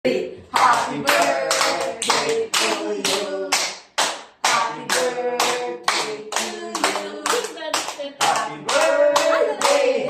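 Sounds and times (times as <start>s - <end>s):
voices singing along: 0.6s - 3.7s, 4.4s - 10.0s
group clapping in time: 0.6s - 10.0s.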